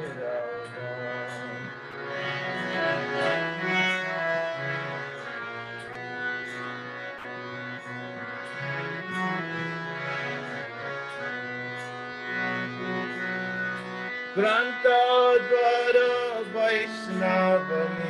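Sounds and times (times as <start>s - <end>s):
person singing: 0.0s - 4.7s, 14.4s - 18.0s
harmonium chords: 0.0s - 18.0s.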